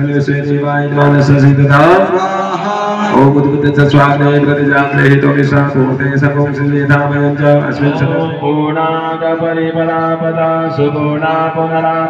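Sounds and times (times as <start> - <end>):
men chanting in long held tones: 1.2 - 5.9, 7.0 - 12.0.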